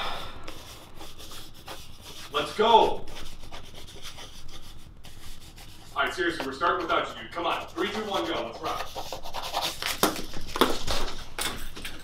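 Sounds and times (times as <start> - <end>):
marker scribbling on paper: 0.5 - 11.0.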